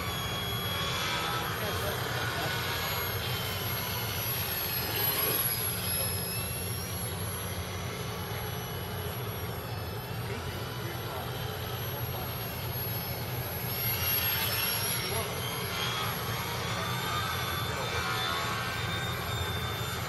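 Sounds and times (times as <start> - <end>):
model aircraft motor whining: 0.0 - 20.0
steady low hum: 0.0 - 20.0.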